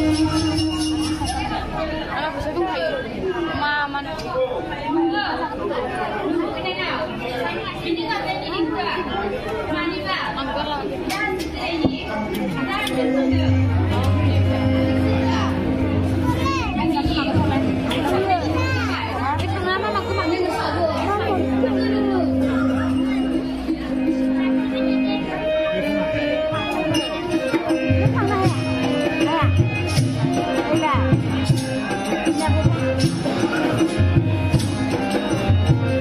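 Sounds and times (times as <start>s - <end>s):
audience chatter: 0.0s - 36.0s
people talking into microphones: 0.0s - 36.0s
background music: 12.0s - 36.0s.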